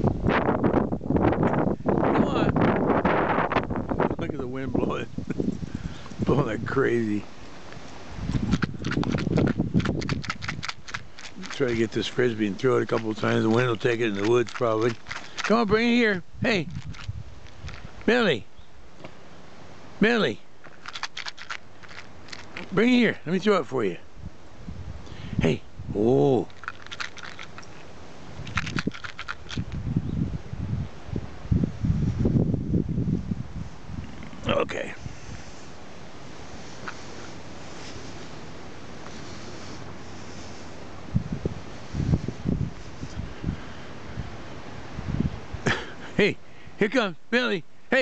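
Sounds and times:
wind buffeting microphone: 0.0s - 18.2s, 21.1s - 27.6s, 28.2s - 35.6s, 36.6s - 45.8s
light clicks and rattles: 8.3s - 15.8s, 20.6s - 22.8s, 26.5s - 29.8s.

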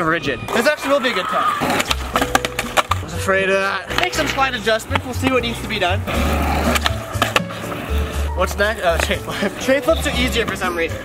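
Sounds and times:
skateboard wheels rolling on concrete: 0.4s - 11.0s
skateboard clacks: 1.6s - 3.1s, 3.9s - 7.8s
background music with bass: 1.6s - 11.0s.

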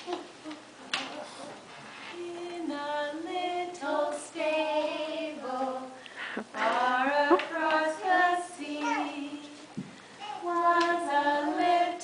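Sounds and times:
women and children singing: 2.1s - 12.0s.

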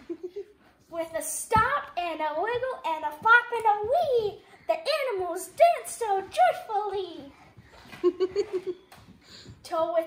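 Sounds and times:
child giggling: 0.0s - 0.6s, 7.8s - 9.0s
person speaking: 0.0s - 7.5s.

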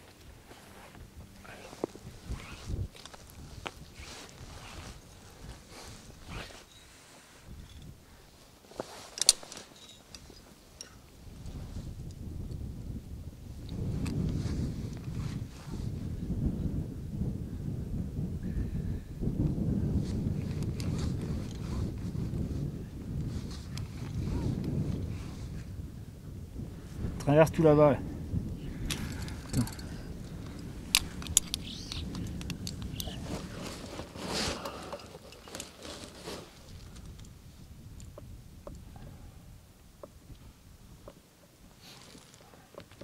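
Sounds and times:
wind gusting on microphone: 0.0s - 43.0s.

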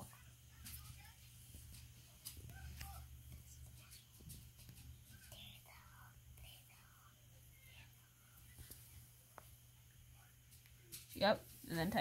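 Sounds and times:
steady low hum: 0.0s - 12.0s
faint whispering: 5.0s - 9.2s.

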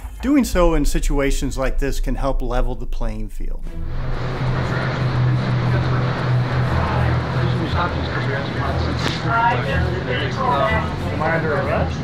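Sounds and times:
low hum: 0.0s - 12.0s
man saying uh: 0.2s - 3.6s
faint indistinct voices: 4.4s - 12.0s.

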